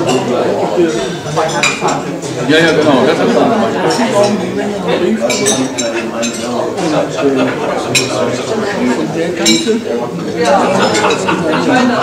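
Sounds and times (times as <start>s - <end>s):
background conversation: 0.0s - 12.0s
crockery and cutlery clinking: 0.0s - 12.0s.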